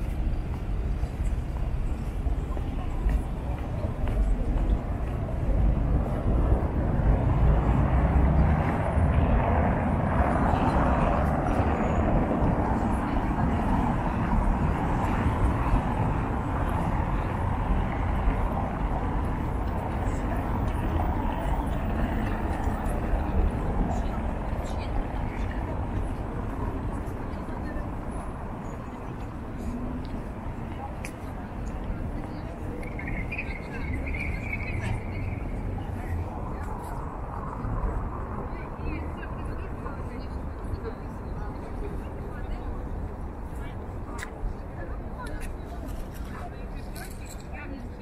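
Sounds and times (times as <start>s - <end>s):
people talking: 0.0s - 48.0s
steady traffic noise: 0.0s - 48.0s.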